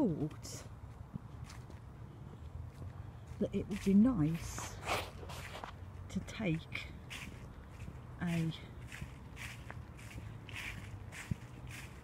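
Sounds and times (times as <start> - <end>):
footsteps on dry leaves: 0.0 - 12.0.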